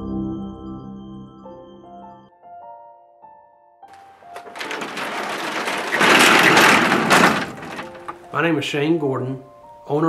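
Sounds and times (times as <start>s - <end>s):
dense rapid rattling transition effect: 4.3s - 8.2s.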